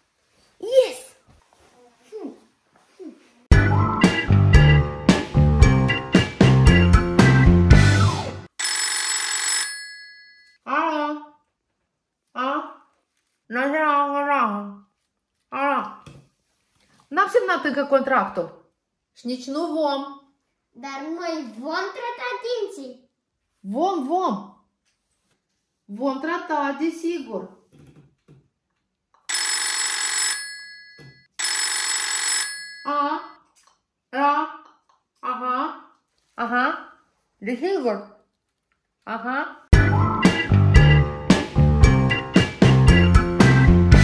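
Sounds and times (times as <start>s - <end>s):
background music: 3.5s - 8.5s, 39.8s - 44.0s
telephone bell ringing: 8.6s - 10.6s, 29.3s - 33.4s.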